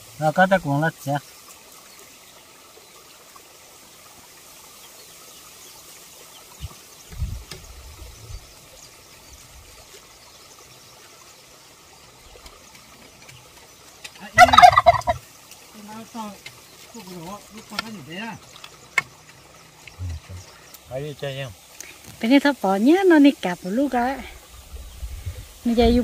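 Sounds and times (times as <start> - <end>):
chicken calling: 14.3 - 15.2.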